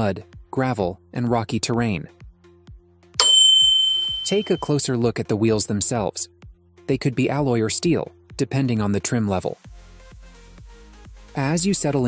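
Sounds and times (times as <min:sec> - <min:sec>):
quiet background music: 0:00.0 - 0:03.5, 0:04.1 - 0:12.0
notification bell ding: 0:03.2 - 0:04.7.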